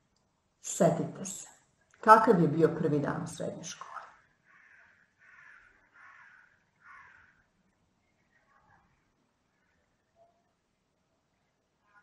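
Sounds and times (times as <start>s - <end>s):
faint harsh bird calls: 3.8s - 10.6s, 11.8s - 12.0s.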